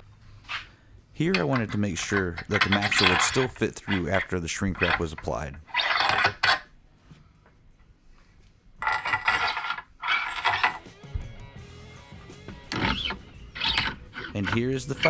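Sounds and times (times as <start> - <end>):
music: 6.7 - 8.8, 10.5 - 15.0.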